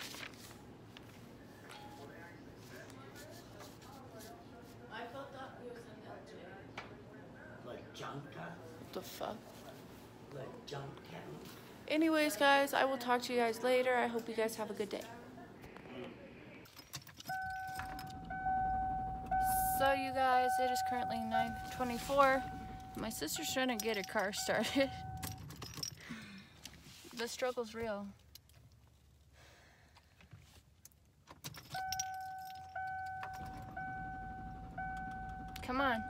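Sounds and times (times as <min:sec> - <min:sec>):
keys jangling: 0:16.7 - 0:18.4, 0:21.6 - 0:26.1, 0:31.2 - 0:35.6
car electronic warning tone: 0:17.3 - 0:25.4, 0:31.8 - 0:36.0.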